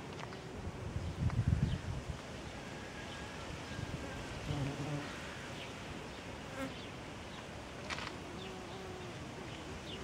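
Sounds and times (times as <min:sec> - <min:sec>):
flying insect buzzing: 0:08.1 - 0:10.0.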